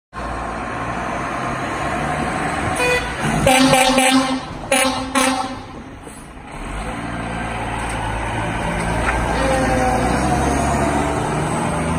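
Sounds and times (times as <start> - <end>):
diesel engine rumbling: 0.2 - 11.9.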